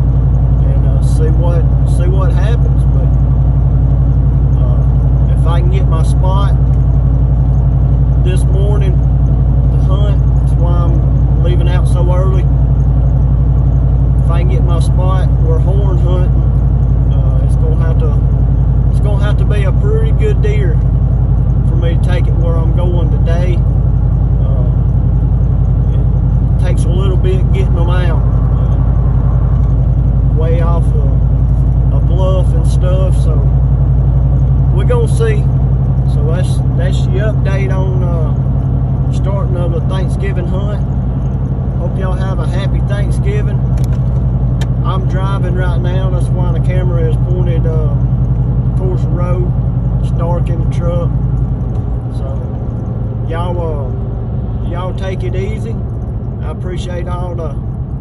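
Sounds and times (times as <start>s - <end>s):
truck cabin road and engine drone: 0.0s - 58.0s
person talking: 25.9s - 28.8s, 54.6s - 55.8s.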